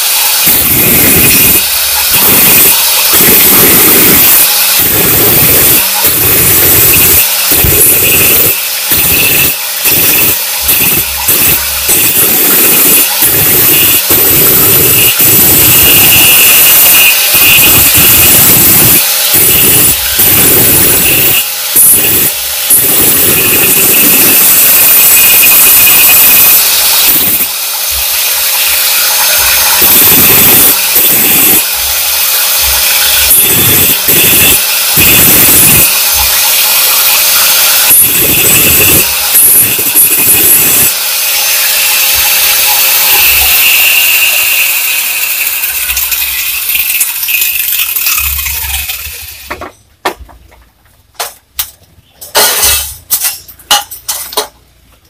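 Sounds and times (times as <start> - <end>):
angle grinder cutting tile: 0.0 - 49.8, 52.4 - 54.6.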